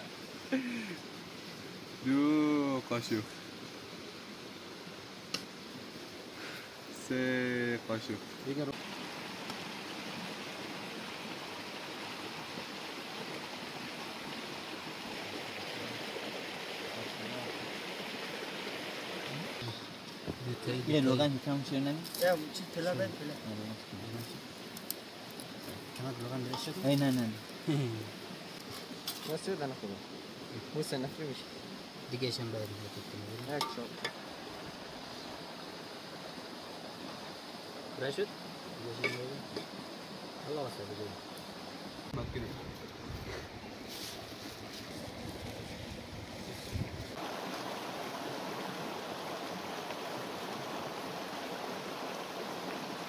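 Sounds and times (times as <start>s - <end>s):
running water rushing: 0.0s - 53.0s.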